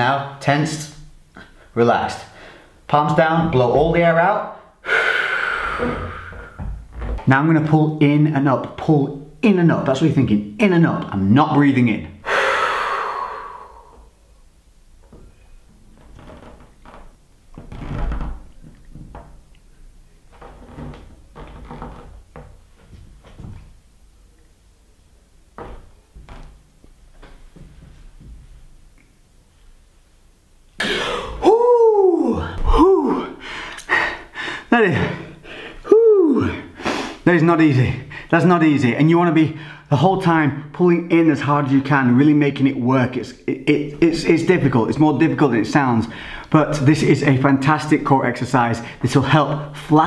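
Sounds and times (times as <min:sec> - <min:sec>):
man exhaling forcefully: 0:04.8 - 0:06.7, 0:12.2 - 0:14.1, 0:30.8 - 0:37.2
faint knocks and rustles: 0:15.0 - 0:24.6, 0:25.5 - 0:29.1.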